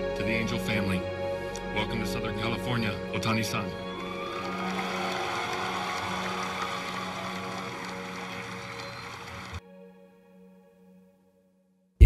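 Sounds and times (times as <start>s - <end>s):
background music: 0.0s - 11.8s
audience applauding: 3.8s - 9.6s.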